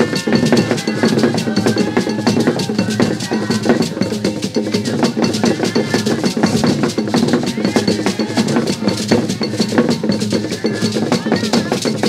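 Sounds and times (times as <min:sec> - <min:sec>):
drum ensemble playing: 0:00.0 - 0:12.0.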